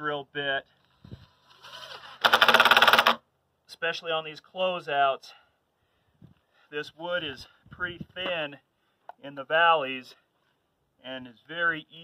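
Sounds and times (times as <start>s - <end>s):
cordless drill boring into wood: 1.2s - 3.2s.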